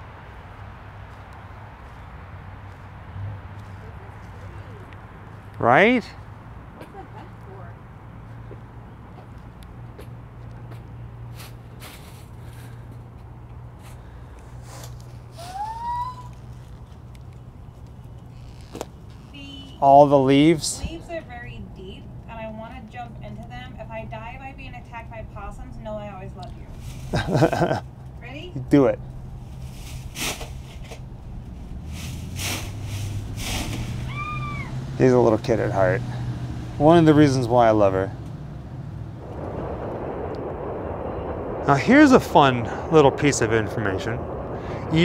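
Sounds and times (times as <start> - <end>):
low hum of city traffic: 0.0 - 45.0
dry leaves crunching underfoot: 11.3 - 12.8, 29.4 - 34.5
footsteps crunching on dry leaves: 11.3 - 12.8.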